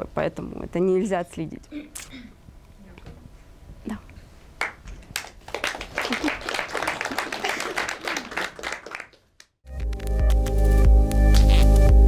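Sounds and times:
audience applause: 4.6s - 9.4s
electronic music: 9.7s - 12.0s.

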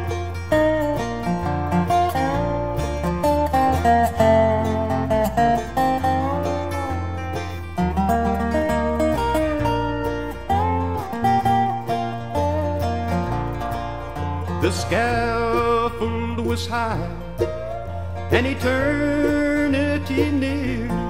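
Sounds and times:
bluegrass string band: 0.0s - 21.0s
walking bass line: 0.0s - 21.0s.

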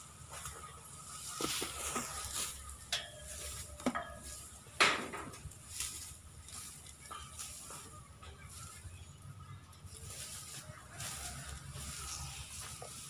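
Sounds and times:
grass and hay rustling: 0.0s - 13.0s.

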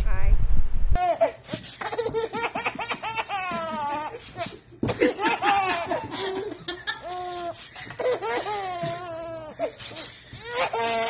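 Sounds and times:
baby laughing in squeals: 1.0s - 11.0s.

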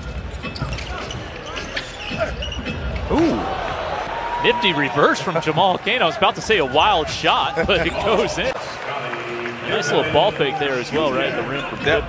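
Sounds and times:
shoe squeaks: 0.1s - 3.2s.

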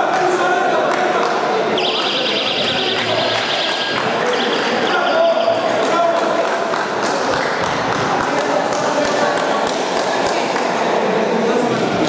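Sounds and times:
voices in a hall: 0.0s - 12.0s
electronic buzzer warbling: 1.7s - 6.0s.

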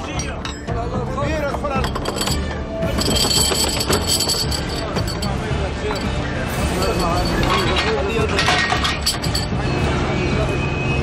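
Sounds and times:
background music: 0.0s - 11.0s
metallic clinking: 1.4s - 9.6s.

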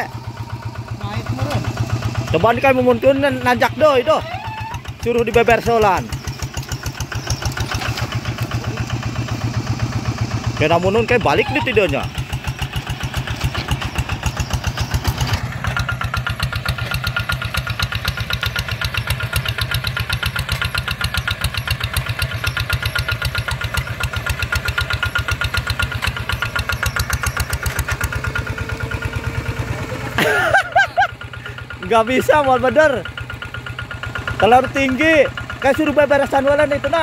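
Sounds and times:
diesel hand tractor chugging: 0.0s - 37.0s.

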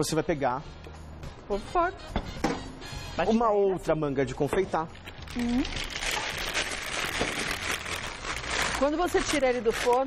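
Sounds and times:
faint background music: 0.0s - 10.0s.

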